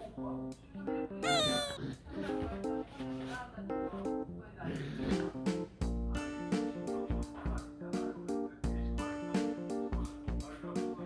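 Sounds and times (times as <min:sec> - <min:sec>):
fox whining cry: 0:01.2 - 0:01.8.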